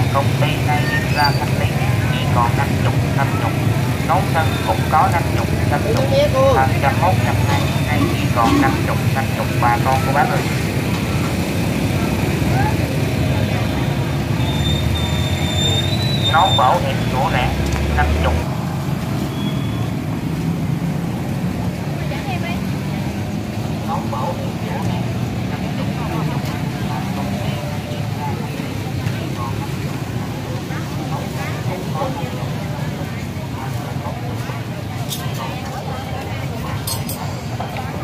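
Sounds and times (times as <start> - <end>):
chatter of many people: 0.0 - 38.0
motorbikes: 0.0 - 38.0
road traffic rumble: 0.0 - 38.0.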